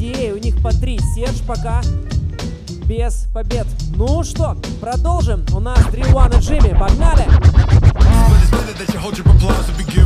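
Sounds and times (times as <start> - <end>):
hip-hop breakbeat: 5.2 - 10.0
record scratching: 5.7 - 8.7.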